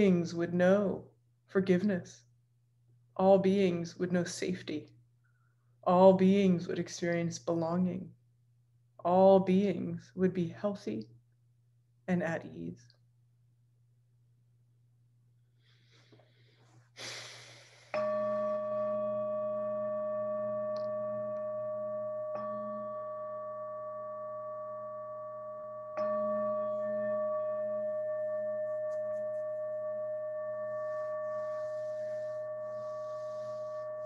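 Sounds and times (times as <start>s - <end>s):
meditation bell ringing: 18.0s - 34.0s.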